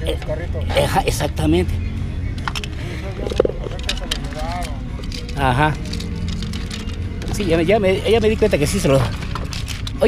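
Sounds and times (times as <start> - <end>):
plastic toys clicking and knocking: 2.4 - 7.6, 8.7 - 10.0.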